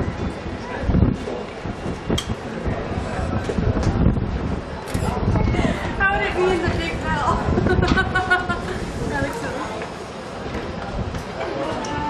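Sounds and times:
wind rumble on microphone: 0.0 - 12.0
people talking indistinctly: 2.6 - 12.0.

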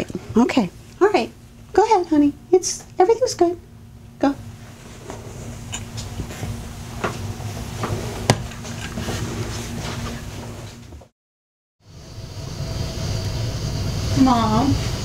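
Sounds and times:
low room rumble: 0.0 - 11.1, 11.9 - 15.0
steady hum: 0.0 - 11.1, 11.9 - 15.0.

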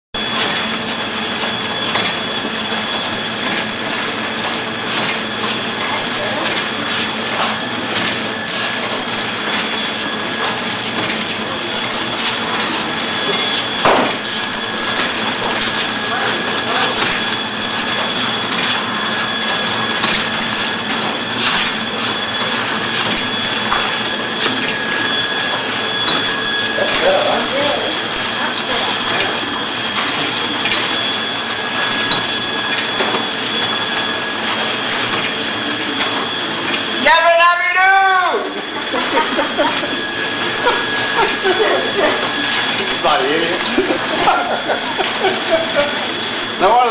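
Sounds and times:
high machine whines: 0.2 - 46.9
packaging machine din: 0.2 - 46.9.

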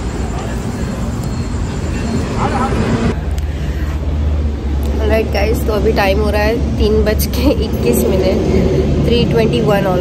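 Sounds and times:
road vehicle rumble: 0.0 - 10.0.

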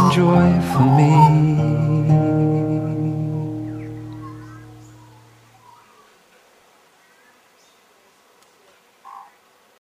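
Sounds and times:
faint bird chirps: 0.6 - 1.4, 3.4 - 8.2, 9.0 - 9.4.

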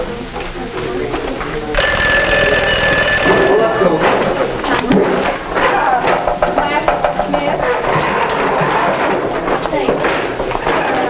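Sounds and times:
bell ringing: 1.8 - 4.9.

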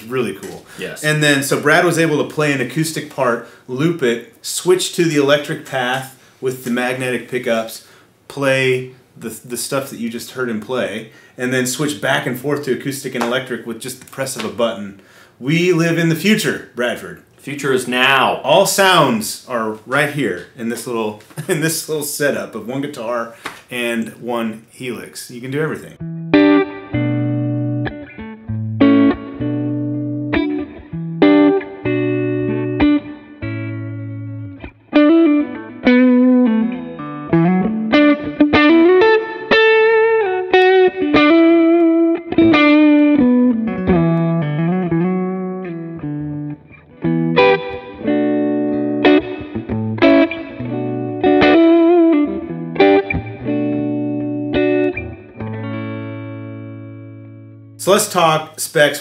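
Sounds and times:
electric guitar chords: 26.0 - 57.8
electric guitar melody with slides: 26.0 - 57.8.

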